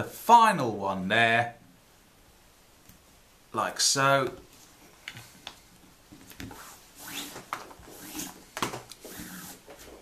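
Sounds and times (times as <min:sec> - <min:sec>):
cord swishing on cord: 0:06.2 - 0:10.0.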